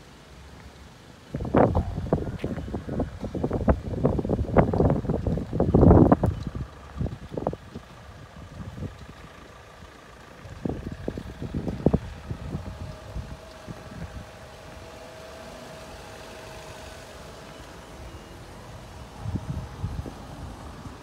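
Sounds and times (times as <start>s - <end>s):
faint outdoor hum: 0.0s - 21.0s
wind buffeting microphone: 1.3s - 21.0s.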